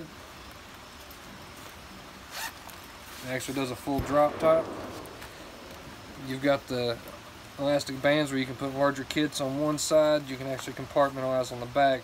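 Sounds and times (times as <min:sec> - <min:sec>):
zipper pulled open: 0:02.3 - 0:02.8.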